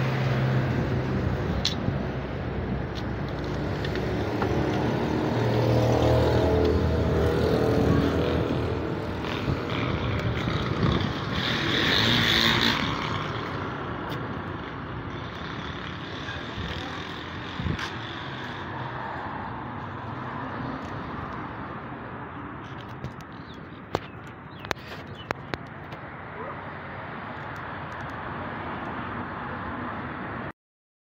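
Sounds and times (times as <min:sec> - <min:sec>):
engine hum: 0:00.0 - 0:26.7
vehicles passing: 0:00.0 - 0:30.5.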